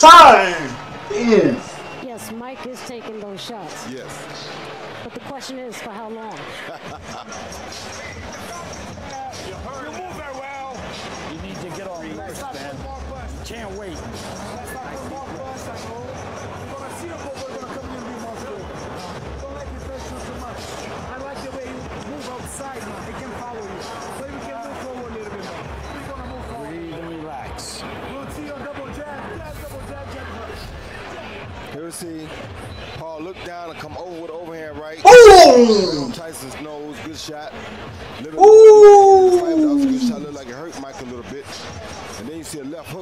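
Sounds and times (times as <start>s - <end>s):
crowd din of voices: 0.0s - 7.6s, 35.0s - 36.2s, 38.3s - 40.4s.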